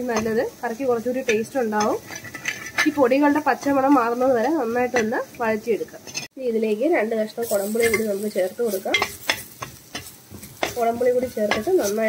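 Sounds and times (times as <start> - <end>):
paste sizzling: 0.0 - 6.3, 6.9 - 12.0
spoon scraping iron pan: 0.0 - 6.4, 7.5 - 12.0
spoon knocking against pan: 8.9 - 12.0.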